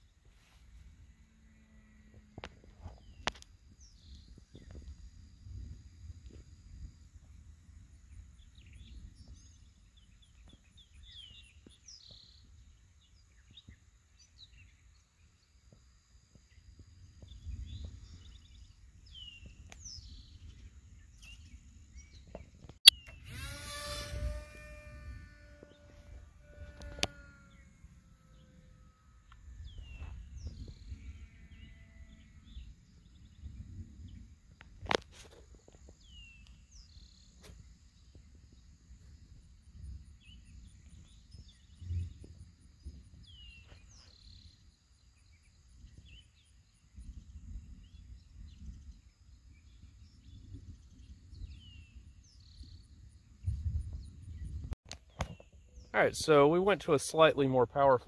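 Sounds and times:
model plane motor whining: 22.9s - 29.8s
low wind rumble: 24.0s - 35.0s, 45.7s - 54.8s.

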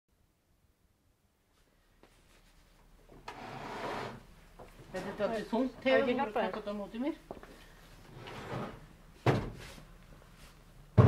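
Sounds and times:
heavy object scraping across shelf: 3.3s - 4.3s, 8.0s - 8.9s.

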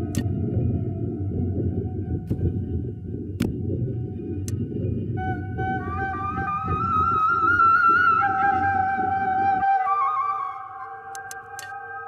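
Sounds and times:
low rumbling drone: 0.0s - 10.2s
sharp click: 11.1s - 11.8s.

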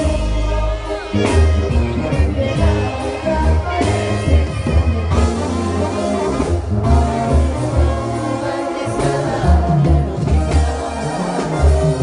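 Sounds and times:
concert crowd: 0.0s - 12.0s
deep bass line: 0.0s - 12.0s
lead singer: 0.0s - 12.0s
live brass band music: 0.0s - 12.0s.

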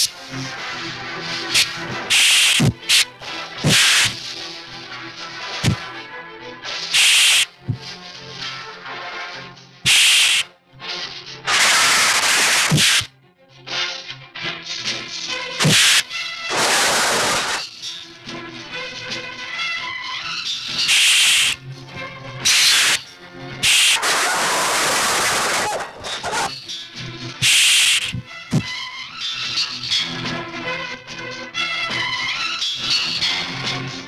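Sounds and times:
background music: 0.0s - 25.0s, 26.5s - 34.0s
loud hissing swish: 1.6s - 4.2s, 7.0s - 7.5s, 9.9s - 10.4s, 11.6s - 13.1s, 15.6s - 17.6s, 20.9s - 21.6s, 23.6s - 24.0s, 27.4s - 28.2s.

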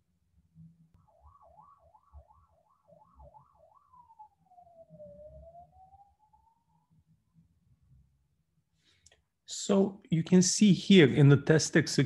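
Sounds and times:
faint siren wailing: 0.6s - 8.5s.

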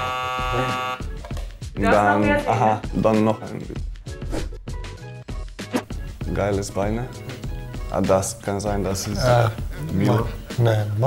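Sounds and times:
quiz buzzer: 0.0s - 1.2s.

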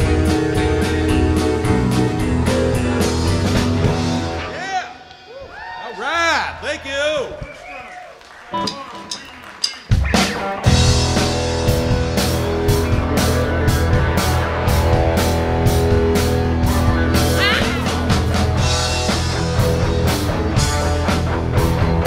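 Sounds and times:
full band with drums: 0.0s - 22.0s.

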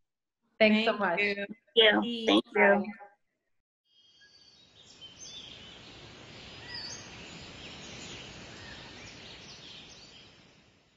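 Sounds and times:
outdoor ambience hiss: 4.0s - 10.9s.

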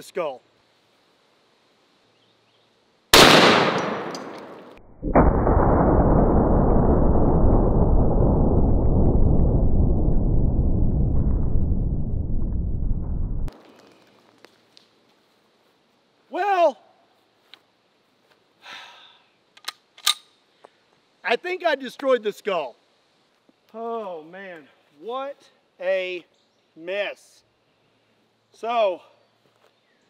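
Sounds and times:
rifle shot with echo: 3.2s - 6.3s
long muffled rumble: 6.0s - 13.5s.

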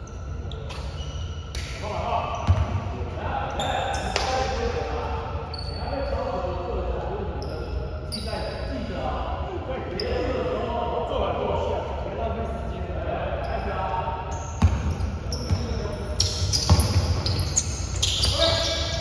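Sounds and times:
shoe squeaks: 0.0s - 2.8s, 3.5s - 4.5s, 5.4s - 6.5s, 7.4s - 8.8s, 13.4s - 19.0s
players' voices: 1.6s - 19.0s
basketballs bouncing on court: 2.4s - 2.8s, 14.6s - 18.9s.

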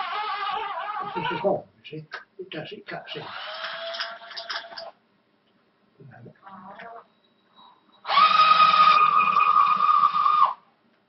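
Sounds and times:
cordless drill whining: 3.2s - 4.9s, 8.0s - 10.6s.

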